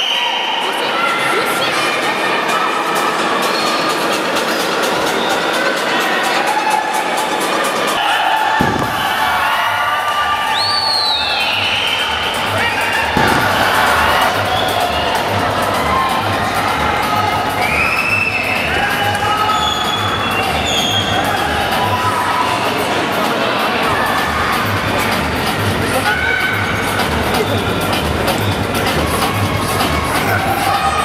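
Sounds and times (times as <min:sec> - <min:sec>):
crowd cheering and shouting: 0:00.0 - 0:31.0.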